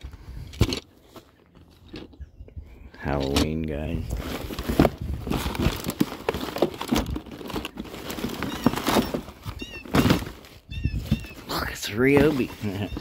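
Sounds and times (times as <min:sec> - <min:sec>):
items rustling and clattering: 0:00.4 - 0:02.2, 0:03.1 - 0:13.0
plastic crinkling: 0:04.2 - 0:10.5.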